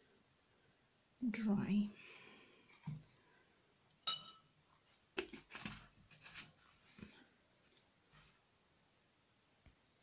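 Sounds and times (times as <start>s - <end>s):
sharp clink with ring: 4.0s - 4.5s.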